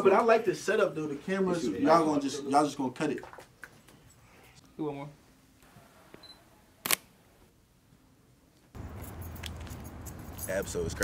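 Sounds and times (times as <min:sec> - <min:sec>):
outdoor background noise: 0:00.0 - 0:11.0
camera shutter click: 0:06.8 - 0:07.1.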